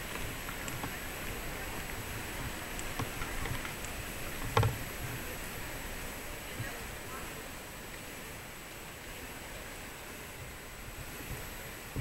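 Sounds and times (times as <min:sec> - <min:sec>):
street ambience hiss: 0:00.0 - 0:12.0.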